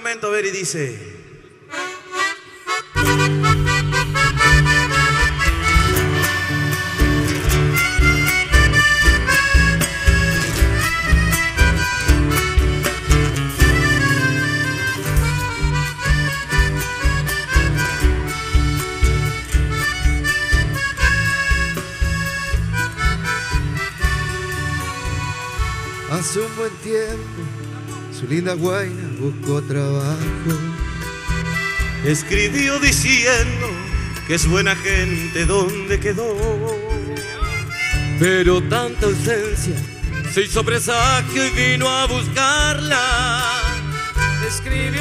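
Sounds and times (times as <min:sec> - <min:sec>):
accordion: 0:01.4 - 0:45.0
guitars: 0:01.6 - 0:45.0
bass: 0:02.7 - 0:45.0
drums with steady beat: 0:03.0 - 0:28.0, 0:30.2 - 0:45.0.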